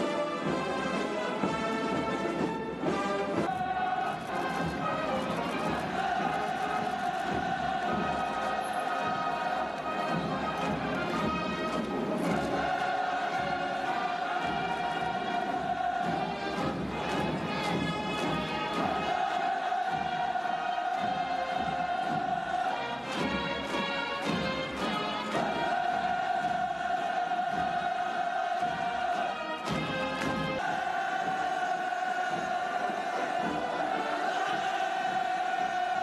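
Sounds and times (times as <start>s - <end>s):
choir singing long notes: 0.0s - 36.0s.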